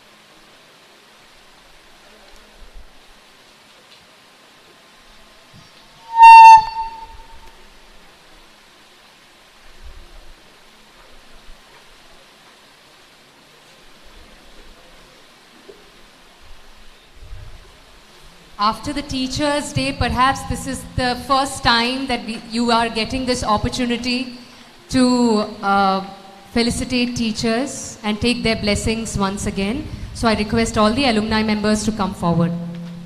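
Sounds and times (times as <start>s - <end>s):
microphone feedback squeal: 6.0s - 7.6s.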